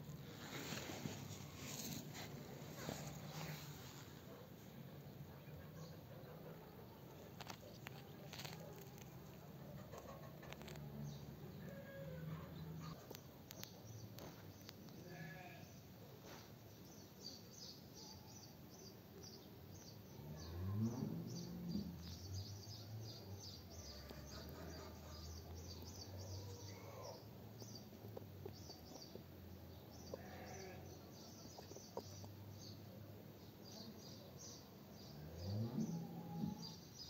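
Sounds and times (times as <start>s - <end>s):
livestock bleating: 15.0s - 15.8s, 30.1s - 30.9s.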